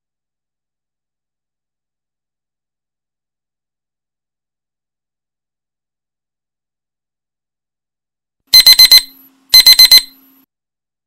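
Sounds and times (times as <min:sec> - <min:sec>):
electronic alarm beeping: 0:08.5 - 0:10.5.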